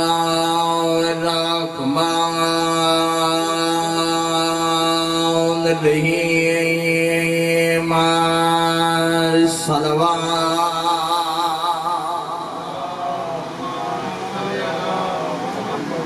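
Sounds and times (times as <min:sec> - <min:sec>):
man chanting a long note: 0:00.0 - 0:15.8.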